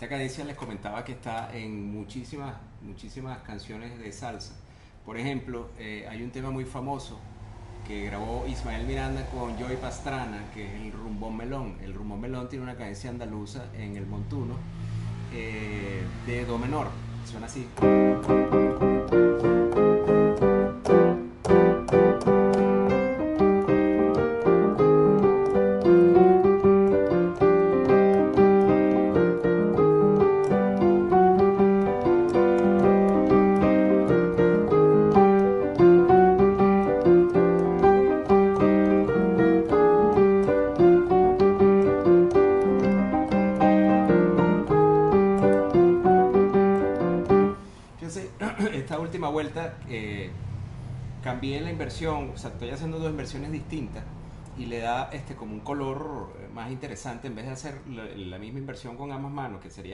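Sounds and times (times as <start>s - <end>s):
salsa piano chords: 6.3s - 54.0s.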